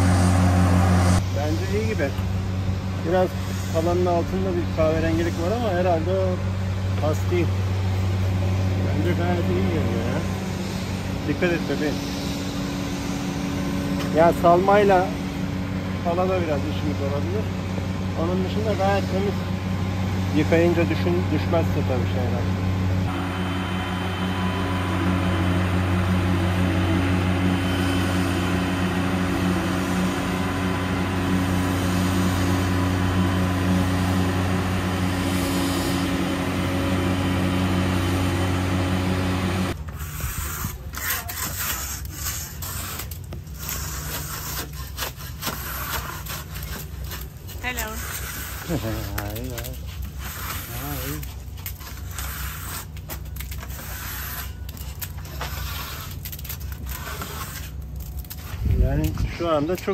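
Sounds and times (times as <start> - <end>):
lift engine humming: 0.0 - 39.9
scraper rasping on steel hull: 39.7 - 58.8.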